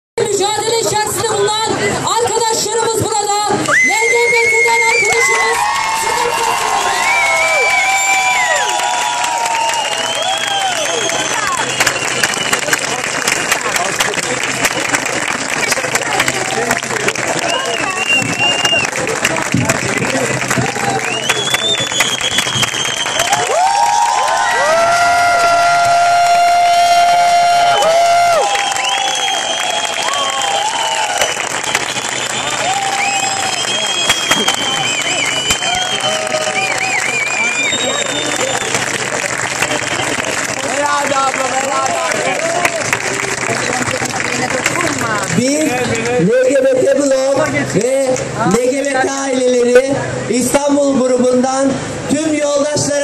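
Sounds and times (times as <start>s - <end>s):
crowd cheering and shouting: 0.4s - 50.3s
crowd clapping: 3.5s - 49.7s.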